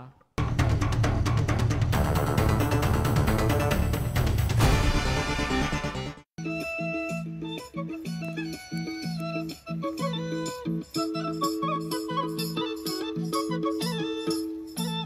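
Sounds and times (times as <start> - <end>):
rhythmic folk dance music: 0.4 - 15.0.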